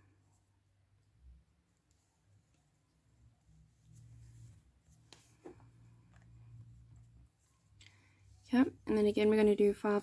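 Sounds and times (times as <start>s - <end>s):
faint low hum: 0.0s - 9.9s
soft rustles of yarn: 0.0s - 10.0s.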